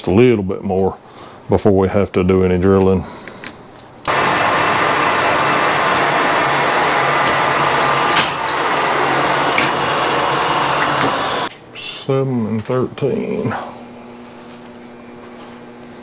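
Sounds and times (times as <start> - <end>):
metal lathe cutting: 4.1 - 11.5.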